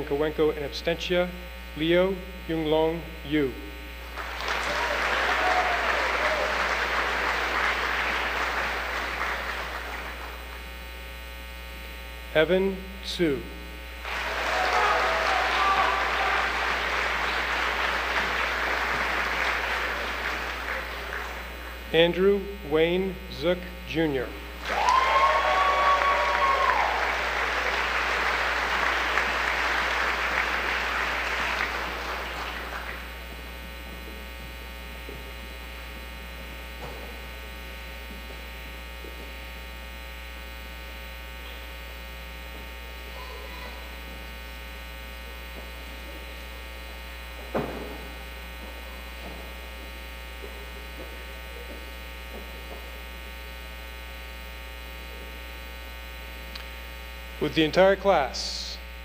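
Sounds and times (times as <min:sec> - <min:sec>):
electrical mains hum: 0:00.0 - 0:59.0
audience applauding: 0:04.1 - 0:10.5, 0:14.0 - 0:21.8, 0:24.6 - 0:33.3.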